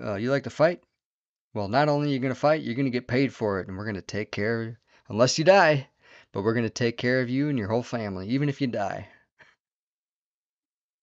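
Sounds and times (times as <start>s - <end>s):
person speaking: 0.0s - 9.2s
short breath: 5.9s - 6.4s, 9.1s - 9.6s.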